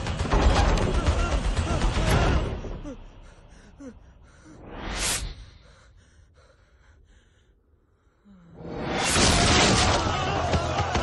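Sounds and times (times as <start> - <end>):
faint breaths: 2.9 - 8.7.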